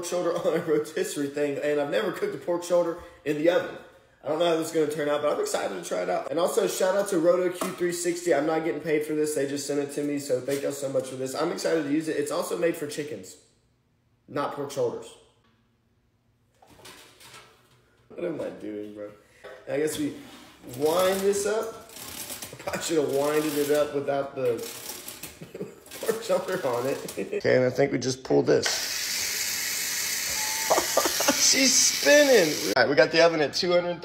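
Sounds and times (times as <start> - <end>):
wind-up mechanism whirring: 28.7 - 32.8.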